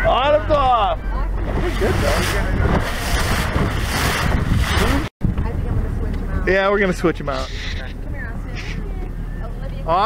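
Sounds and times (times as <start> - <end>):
motorboat engine running: 0.0 - 10.0
water rushing past boat: 0.0 - 10.0
wind buffeting microphone: 0.4 - 9.9.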